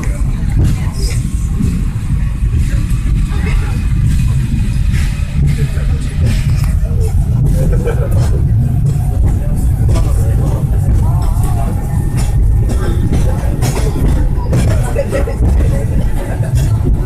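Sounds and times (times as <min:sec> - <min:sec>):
passengers' voices: 0:00.0 - 0:17.0
tram car rumbling on track: 0:00.0 - 0:17.0.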